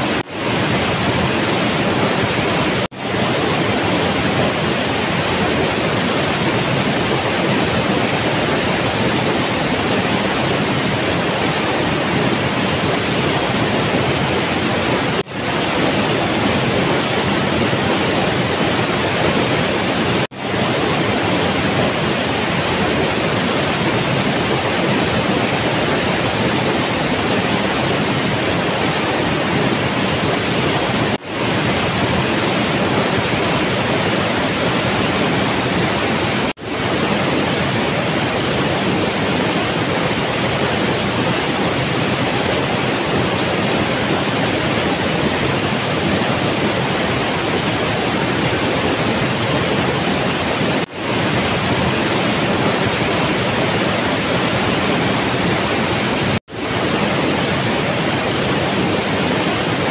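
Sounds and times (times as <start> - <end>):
waterfall rushing: 0.0 - 59.9.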